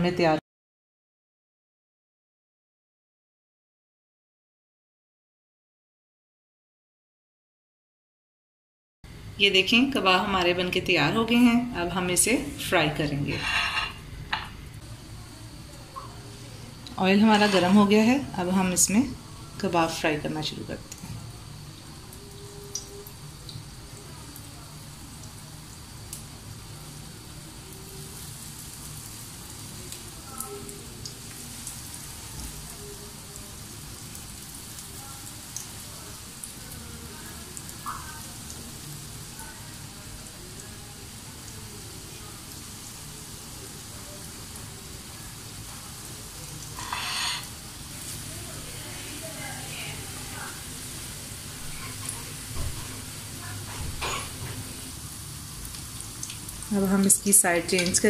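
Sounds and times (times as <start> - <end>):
cutlets sizzling in hot oil: 11.2 - 58.0.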